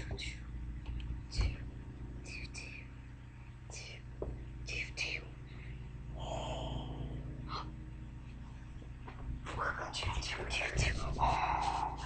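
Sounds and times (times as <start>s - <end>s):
person whispering: 0.0s - 0.5s, 1.3s - 1.7s, 2.3s - 2.9s, 3.7s - 4.1s, 4.7s - 5.4s, 6.2s - 7.7s, 9.5s - 12.0s
steady low hum: 0.0s - 12.0s.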